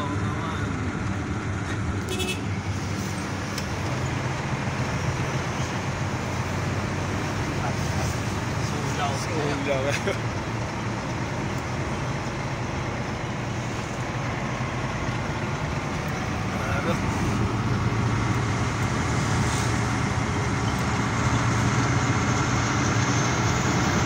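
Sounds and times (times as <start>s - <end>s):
vehicle engine and road noise: 0.0s - 24.0s.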